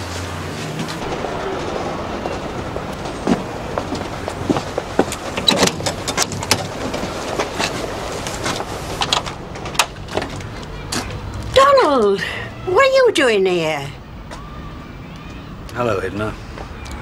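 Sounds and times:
traffic rumble: 0.0 - 17.0.

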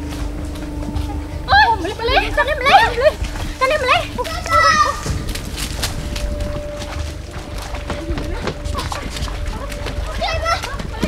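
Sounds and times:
background music: 0.0 - 11.0
water splashing: 0.0 - 11.0
women shouting: 1.4 - 5.3.

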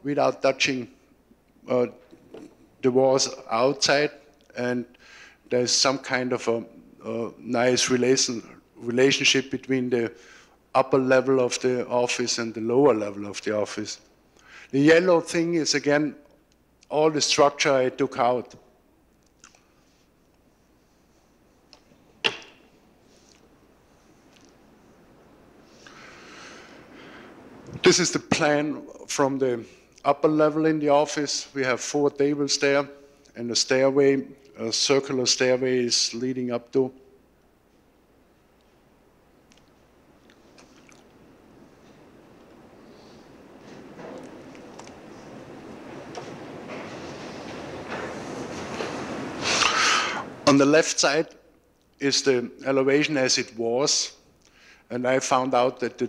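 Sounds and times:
steady rushing hiss and rumble: 0.0 - 56.0
slide projector clack: 21.8 - 22.7.

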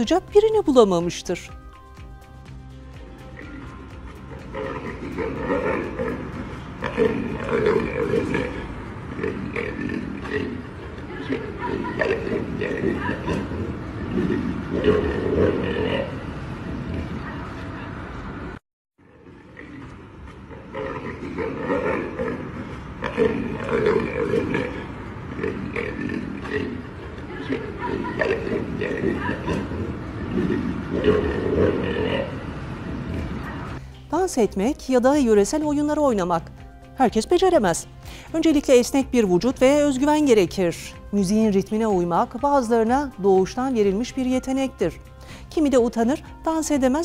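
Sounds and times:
lion growling: 3.2 - 17.9, 19.2 - 33.8.

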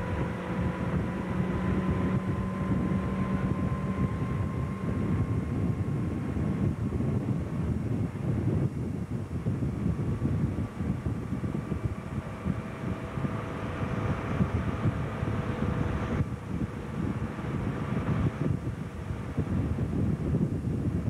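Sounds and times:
motorboat engine running: 0.0 - 21.0
wind buffeting microphone: 0.0 - 21.0.

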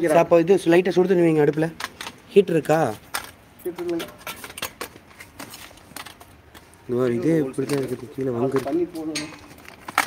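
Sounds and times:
man speaking: 0.0 - 3.0, 6.9 - 9.3
light metallic clicks and clinks: 8.6 - 10.0.

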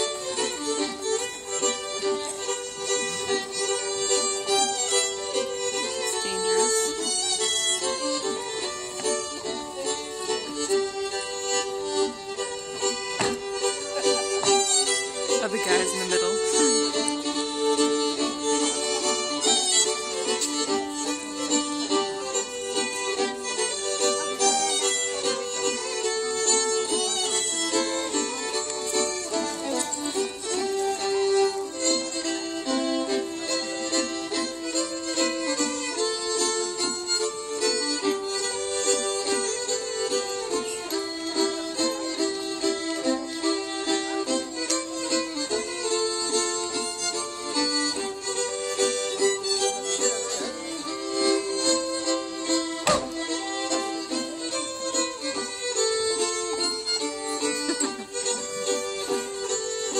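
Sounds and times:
fiddles playing a dance tune: 0.0 - 59.9.

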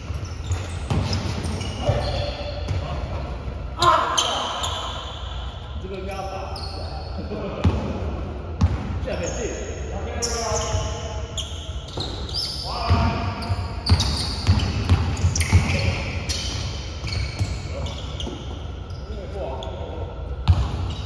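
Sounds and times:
sneaker squeaks: 0.0 - 7.7, 8.6 - 21.0
basketball bouncing on gym floor: 8.6 - 9.0, 12.8 - 18.5, 20.4 - 21.0.

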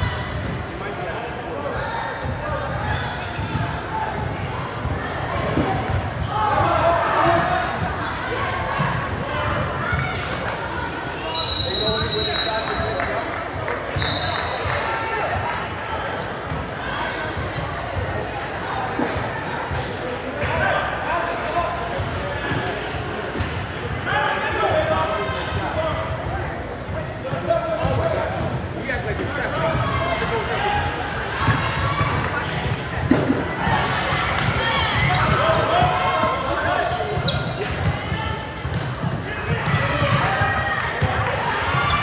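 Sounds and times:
sneaker squeaks: 0.0 - 0.8, 1.6 - 13.1, 13.9 - 14.8, 17.4 - 20.6, 23.4 - 42.0.

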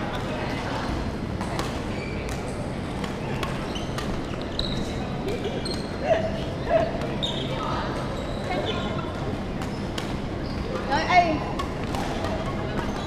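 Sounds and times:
rackets hitting shuttlecocks: 9.6 - 13.0.

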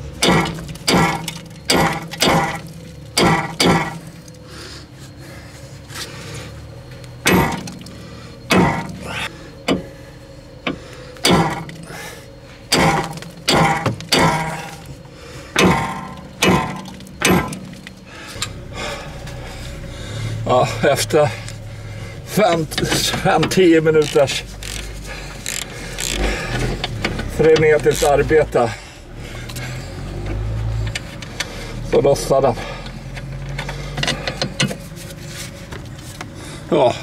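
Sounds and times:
sledgehammer striking metal: 0.2 - 4.0, 7.2 - 7.8, 8.5 - 9.0, 11.2 - 11.8, 12.7 - 14.8, 15.5 - 17.8.

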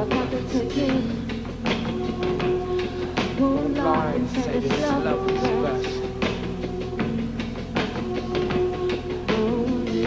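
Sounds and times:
live band music: 0.0 - 10.0.

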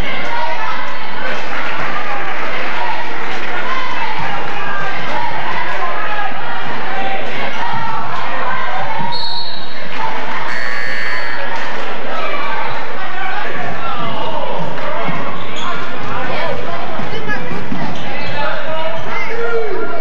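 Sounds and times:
spectators' voices: 0.0 - 20.0.

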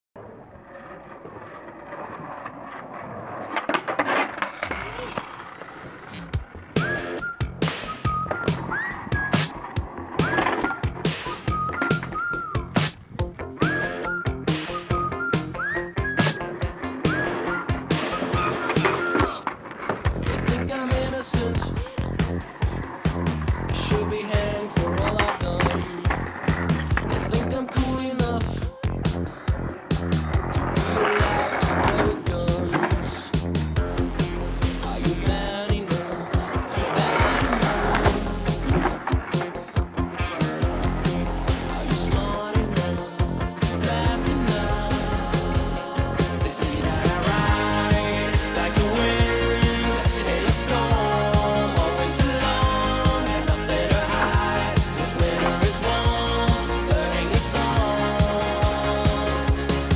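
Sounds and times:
skateboard clacks: 0.2 - 49.8
skateboard wheels rolling on asphalt: 0.2 - 59.9
background music with beat: 6.2 - 19.4, 20.0 - 59.9.

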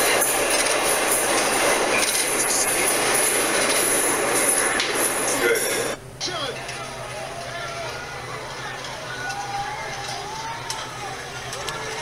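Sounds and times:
subway train wheels on rails: 0.0 - 6.0.

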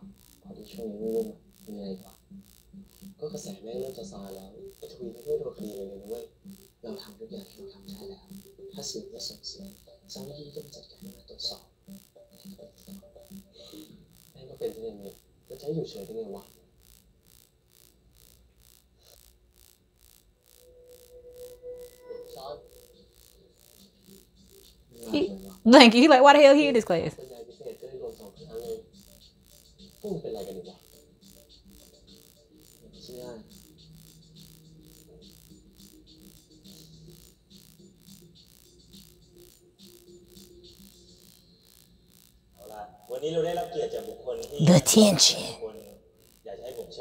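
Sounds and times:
soft electronic background music: 0.0 - 47.0
dialogue: 0.6 - 16.5, 24.9 - 29.2, 42.6 - 45.9.

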